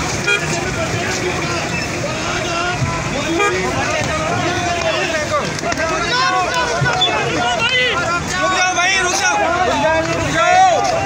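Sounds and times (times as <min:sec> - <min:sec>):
crowd talking and shouting: 0:00.0 - 0:11.0.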